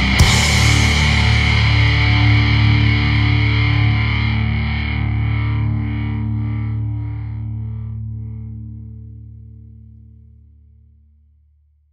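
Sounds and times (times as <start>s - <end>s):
distorted electric guitar chord: 0.0s - 9.7s.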